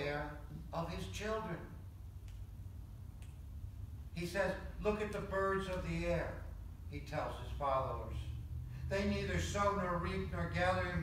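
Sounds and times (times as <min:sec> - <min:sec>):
steady low hum: 0:00.0 - 0:11.0
faint sharp clicks: 0:02.2 - 0:02.5, 0:03.2 - 0:03.5.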